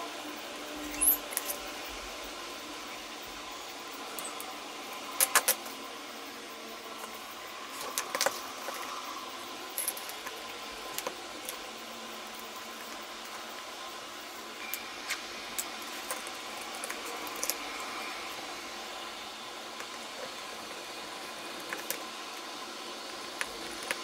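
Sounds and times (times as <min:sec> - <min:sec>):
steady hiss: 0:00.0 - 0:24.0
small parts clicking and tapping: 0:05.1 - 0:05.8, 0:07.0 - 0:09.0, 0:09.7 - 0:11.7, 0:14.6 - 0:17.9, 0:21.5 - 0:22.5, 0:23.1 - 0:24.0.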